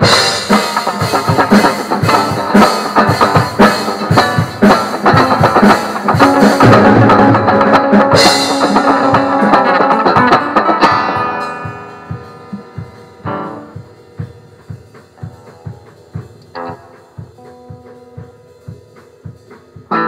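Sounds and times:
music with drum-kit beat: 0.0 - 20.0.

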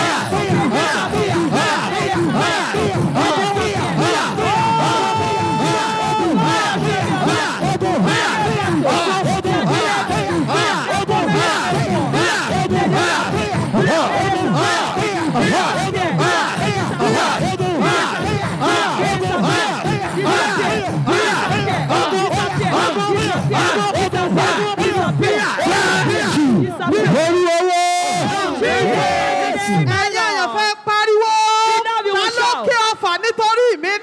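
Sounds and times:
crowd shouting and crying out: 0.0 - 34.0.

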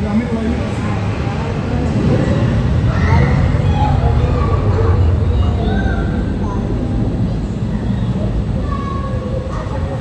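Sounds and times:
jet engines low rumble: 0.0 - 10.0.

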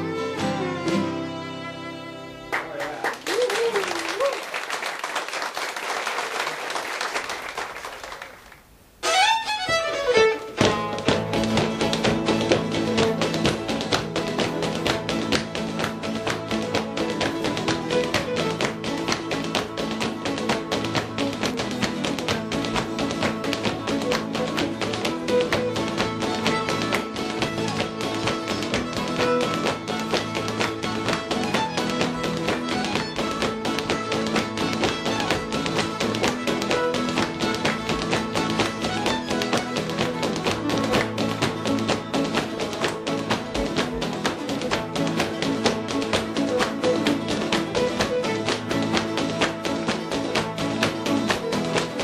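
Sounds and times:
acoustic guitars playing dance tune: 0.0 - 4.4, 7.2 - 52.0
hard shoes tapping on wooden floor: 10.4 - 52.0.

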